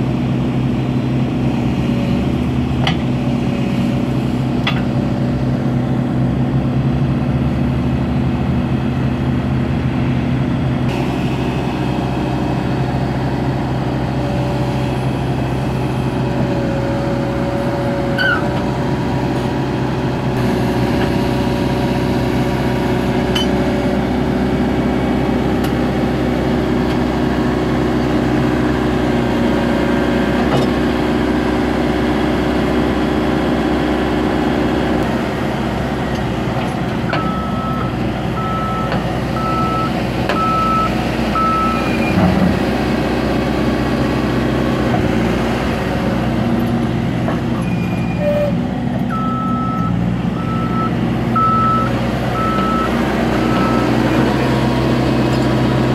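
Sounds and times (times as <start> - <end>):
diesel engine running: 0.0 - 55.9.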